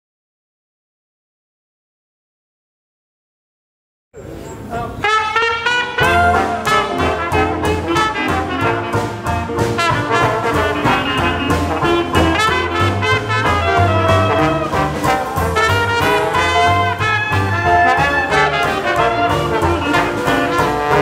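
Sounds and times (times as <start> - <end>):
jazz band playing: 4.9 - 21.0.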